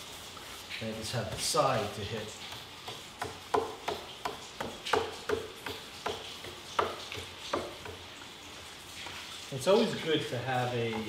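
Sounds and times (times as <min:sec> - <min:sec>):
paintbrush tapping on wood: 0:02.5 - 0:08.0.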